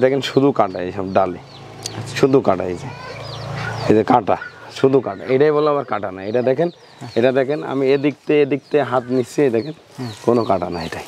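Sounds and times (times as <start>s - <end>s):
man talking in low voice: 3.8s - 11.0s.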